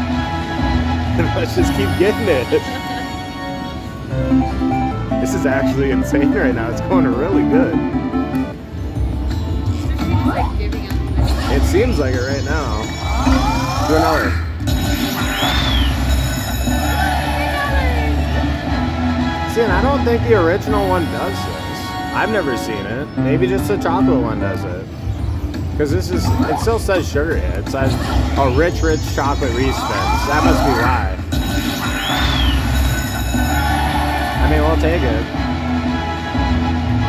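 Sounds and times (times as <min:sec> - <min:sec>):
low hum of casino floor: 0:00.0 - 0:37.0
slot machine electronic tones: 0:04.2 - 0:09.9, 0:10.6 - 0:17.7, 0:22.1 - 0:33.9
whistle-like tone sweeping: 0:15.1 - 0:16.3, 0:31.8 - 0:33.8.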